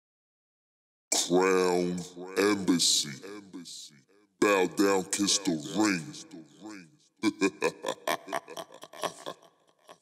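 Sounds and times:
man laughing: 7.2 - 10.0.

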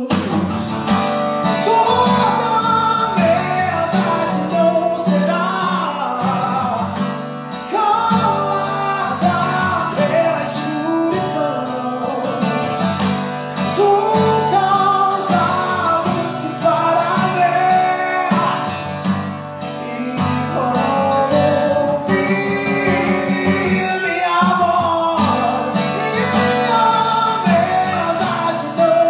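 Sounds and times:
acoustic guitar strumming: 0.0 - 29.0
man singing: 0.0 - 29.0.

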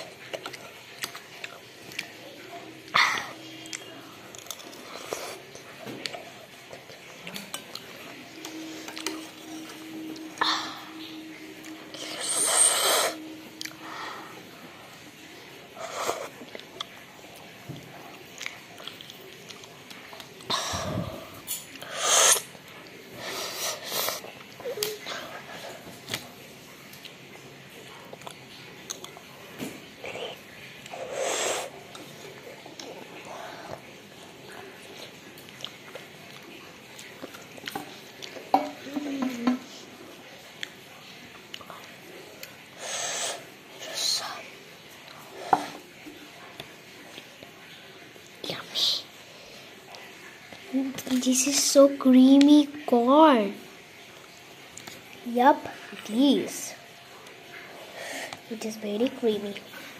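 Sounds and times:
child eating sounds: 0.0 - 59.9.

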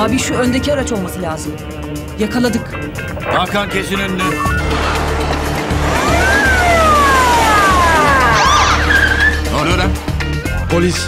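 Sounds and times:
dramatic music with low drone: 0.0 - 10.7
tyres squealing: 4.2 - 9.8.

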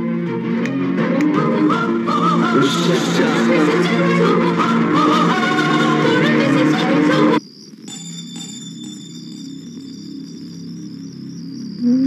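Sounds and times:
crickets chirping: 1.8 - 12.0.

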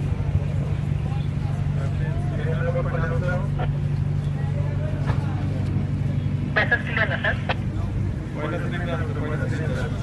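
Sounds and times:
boat engine droning: 0.0 - 10.0
people talking: 0.7 - 10.0.

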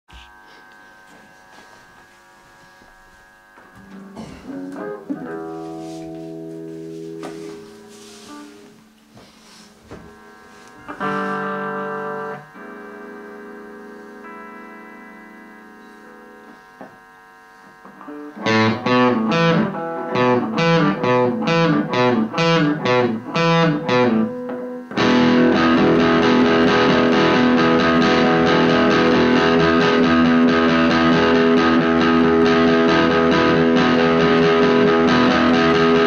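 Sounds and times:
electric guitar through amplifier: 0.1 - 36.0.

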